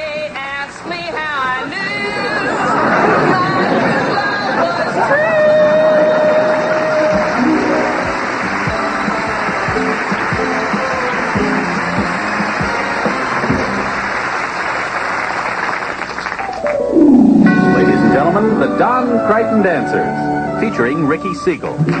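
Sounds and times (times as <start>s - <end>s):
audience applause: 2.2s - 17.0s
band playing brisk tune: 7.3s - 14.2s, 16.3s - 22.0s.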